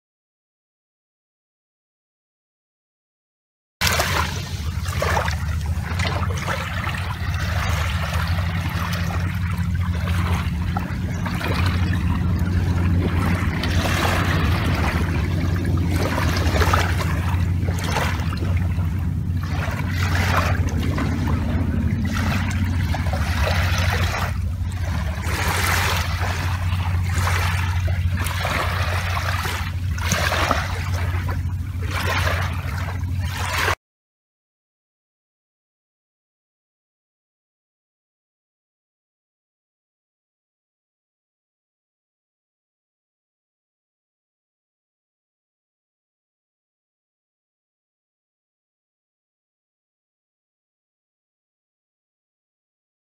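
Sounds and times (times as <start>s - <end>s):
small waves lapping on shore: 3.8s - 33.8s
steady low rumble: 3.8s - 33.8s.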